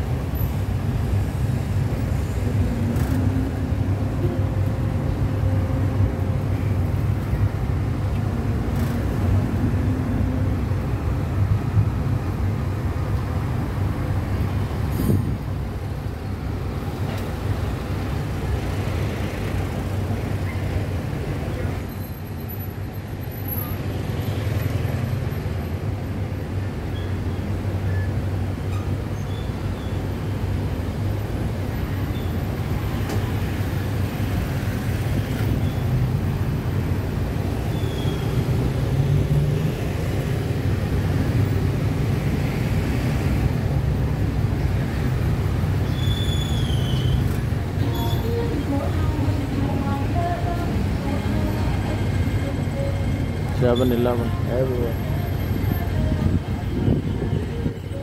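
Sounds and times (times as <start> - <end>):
vehicle engine drone: 0.0 - 28.8
road noise: 0.0 - 58.0
traffic: 0.0 - 58.0.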